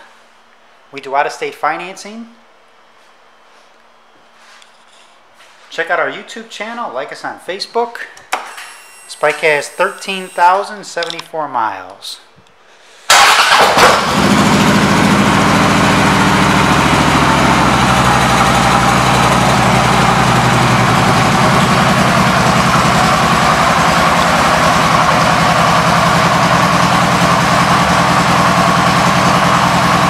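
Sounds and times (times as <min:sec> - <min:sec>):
motorcycle engine idling: 0:14.1 - 0:30.0.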